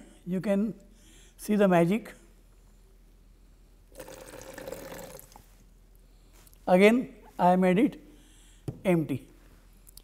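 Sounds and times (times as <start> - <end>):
water pouring into plastic jug: 3.9 - 5.4.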